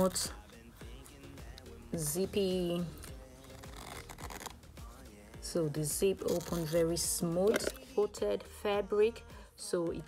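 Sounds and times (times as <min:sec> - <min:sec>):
quiet background music: 0:00.0 - 0:10.0
metal zipper sliding open: 0:03.0 - 0:04.6, 0:06.2 - 0:06.8.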